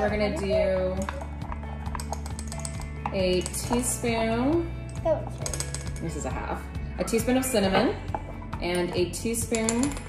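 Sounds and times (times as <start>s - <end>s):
spoons tapping ceramic bowl: 0.0s - 6.4s, 8.0s - 10.0s
quiet background music: 0.0s - 10.0s.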